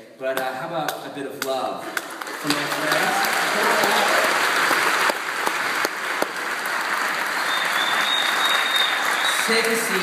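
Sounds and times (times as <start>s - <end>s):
crowd applauding: 1.9s - 10.0s.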